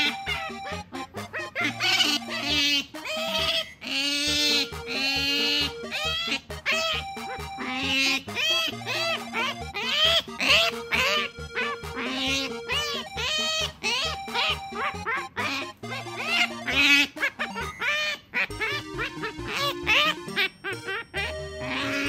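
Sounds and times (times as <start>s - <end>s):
background music: 0.0s - 22.0s
otter chirping: 0.0s - 22.0s.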